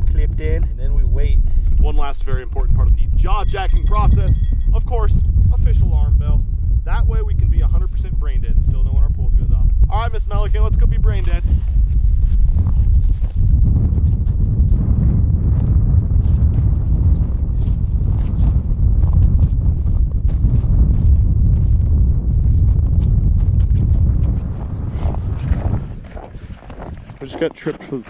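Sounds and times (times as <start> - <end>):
wind rumbling on microphone: 0.0 - 28.0.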